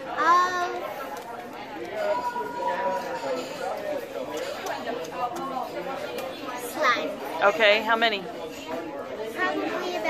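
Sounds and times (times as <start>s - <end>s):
diners chattering: 0.0s - 10.0s.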